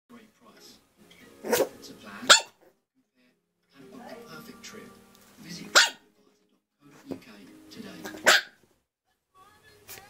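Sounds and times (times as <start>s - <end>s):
puppy barking: 1.4s - 2.7s, 5.7s - 6.0s, 8.1s - 8.6s.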